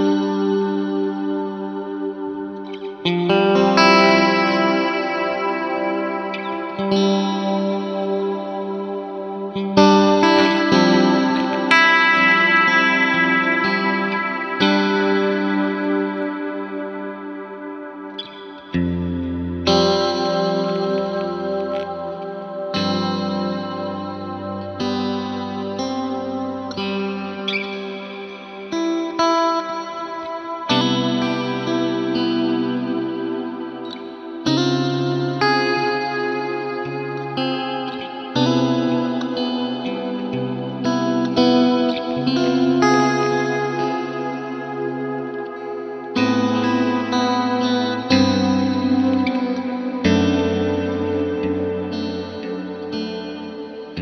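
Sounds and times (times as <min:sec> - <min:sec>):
electric guitar chords with reverb: 0:00.0 - 0:54.0.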